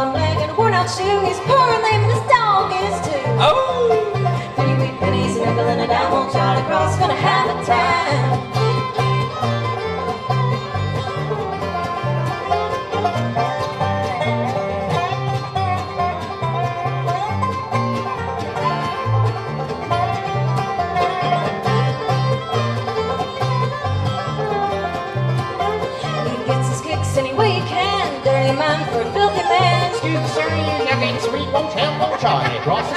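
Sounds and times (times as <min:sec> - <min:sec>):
acoustic bluegrass band playing: 0:00.0 - 0:32.9.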